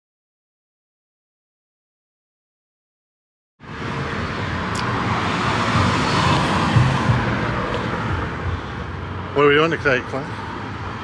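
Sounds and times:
car passing: 0:03.6 - 0:11.0
street traffic noise: 0:03.6 - 0:11.0.

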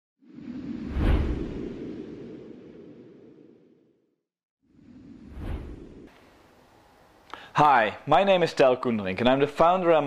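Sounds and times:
whoosh with deep boom: 0:05.2 - 0:06.1.

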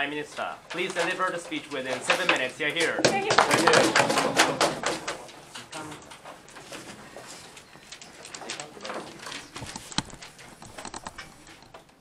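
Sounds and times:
audience hand clapping: 0:03.0 - 0:04.9.

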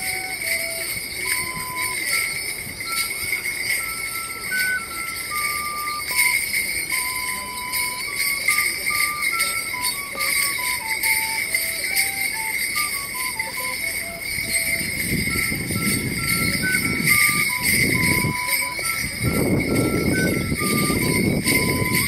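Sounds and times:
leg bells jingling: 0:00.0 - 0:22.0.

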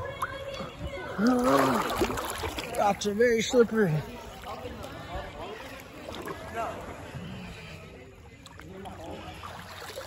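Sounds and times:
distant people talking: 0:00.0 - 0:10.0
rippling water: 0:00.0 - 0:10.0.

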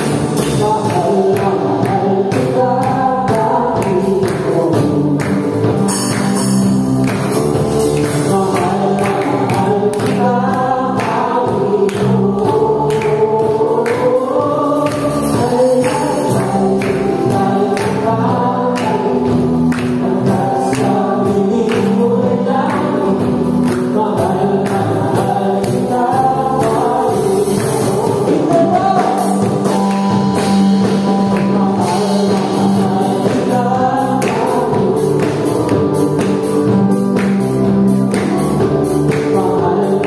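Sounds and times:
acoustic guitar: 0:00.0 - 0:40.0
bass guitar: 0:00.0 - 0:40.0
drum beat: 0:00.0 - 0:40.0
keyboard: 0:00.0 - 0:40.0
voices singing together: 0:00.0 - 0:40.0.

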